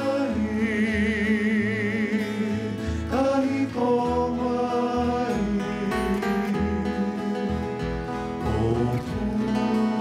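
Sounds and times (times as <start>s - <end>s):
plucked upright bass: 0.0s - 10.0s
strummed acoustic guitars: 0.0s - 10.0s.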